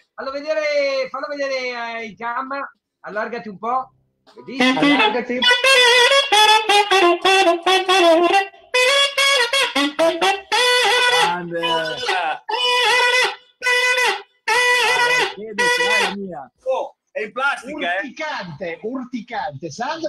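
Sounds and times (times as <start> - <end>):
plastic saxophone notes: 4.6 - 16.2.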